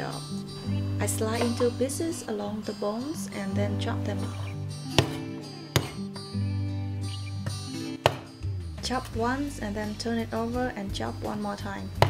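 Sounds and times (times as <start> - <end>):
light guitar background music: 0.0 - 12.0
cleaver chopping on wooden board: 4.9 - 6.0, 7.4 - 8.4.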